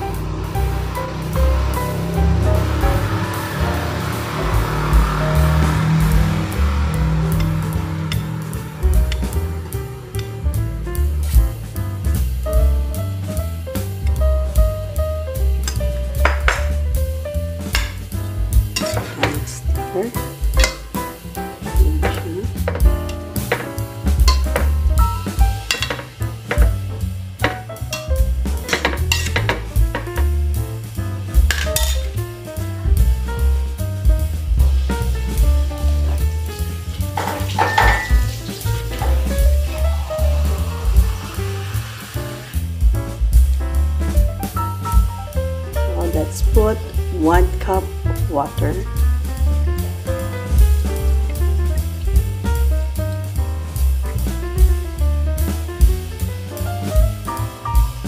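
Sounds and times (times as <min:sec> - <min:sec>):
jazz music: 0:00.0 - 0:58.0
metal spoon scraping a pot: 0:37.2 - 0:40.2.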